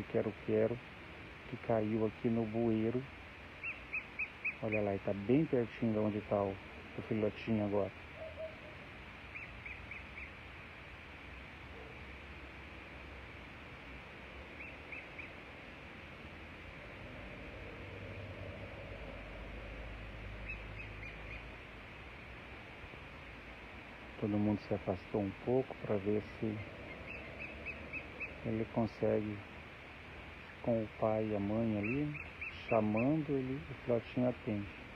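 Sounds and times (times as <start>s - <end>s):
birds calling with high notes: 3.5s - 5.4s, 8.0s - 10.4s, 14.4s - 15.4s, 20.3s - 21.6s, 25.5s - 29.4s, 30.4s - 34.6s
vehicle rumble: 4.6s - 34.9s.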